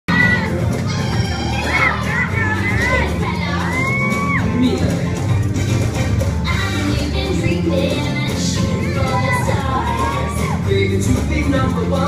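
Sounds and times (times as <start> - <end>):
children shouting and cheering: 0.1 - 5.2, 7.8 - 11.0.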